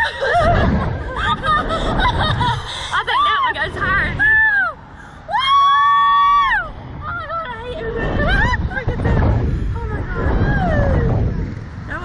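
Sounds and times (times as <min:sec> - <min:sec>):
women laughing and shrieking: 0:00.0 - 0:11.2
wind buffeting microphone: 0:00.0 - 0:12.0.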